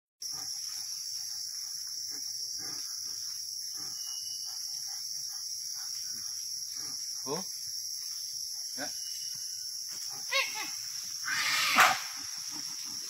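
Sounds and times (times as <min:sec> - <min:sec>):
insects chorus drone: 0:00.2 - 0:13.0.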